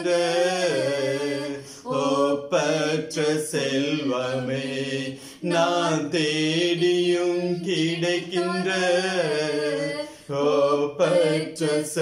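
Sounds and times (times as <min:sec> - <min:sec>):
man and woman singing: 0:00.0 - 0:12.0.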